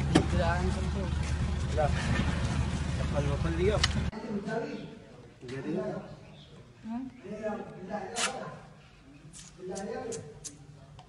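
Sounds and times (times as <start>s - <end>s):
vehicle engine idling: 0.0s - 4.1s.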